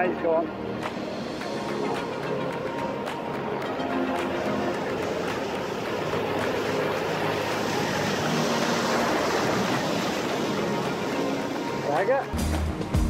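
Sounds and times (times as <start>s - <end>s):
ocean waves breaking on beach: 0.0s - 12.4s.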